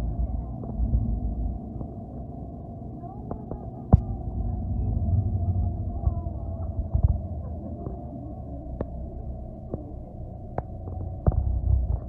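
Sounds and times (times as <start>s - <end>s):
bus rumbling from inside: 4.0s - 12.0s.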